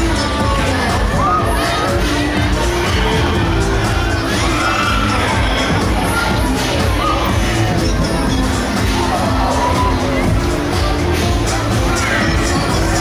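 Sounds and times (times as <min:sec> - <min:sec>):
loud ride music: 0:00.0 - 0:13.0
riders screaming and shouting: 0:00.1 - 0:13.0.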